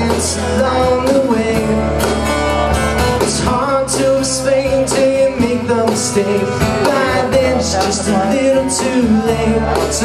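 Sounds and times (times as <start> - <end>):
acoustic guitars: 0.0 - 10.0
electric bass: 0.0 - 10.0.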